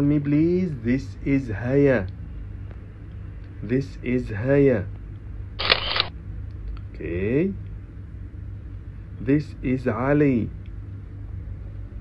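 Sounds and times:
low steady hum: 0.0s - 12.0s
mechanical click and rustle: 5.6s - 6.1s.

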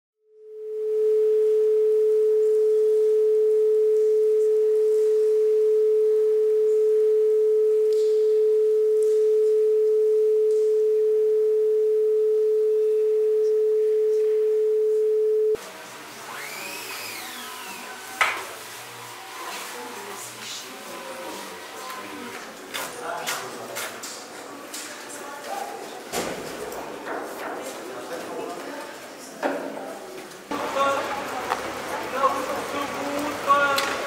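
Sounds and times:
steady pure tone: 0.2s - 15.6s.

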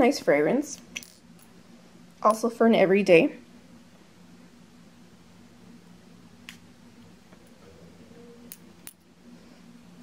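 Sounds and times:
faint low room hum: 0.0s - 10.0s.

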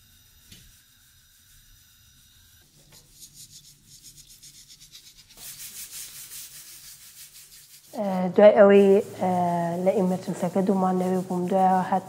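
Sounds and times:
rhythmic rubbing: 0.0s - 12.0s.

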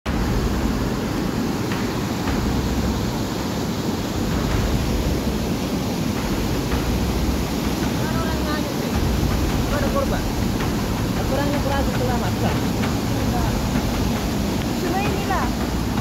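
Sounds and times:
floodwater rushing: 0.1s - 16.0s.

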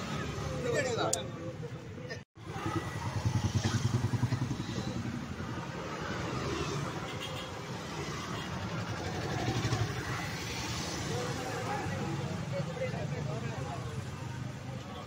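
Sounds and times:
motor scooter passing: 2.4s - 7.0s.

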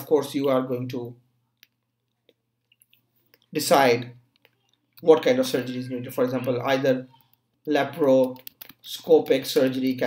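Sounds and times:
person speaking: 0.0s - 10.0s
faint keyboard or mouse clicks: 6.3s - 8.9s.

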